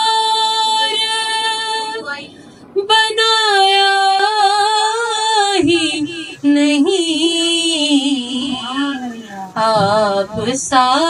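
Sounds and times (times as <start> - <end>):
woman singing through loudspeaker: 0.0 - 11.0.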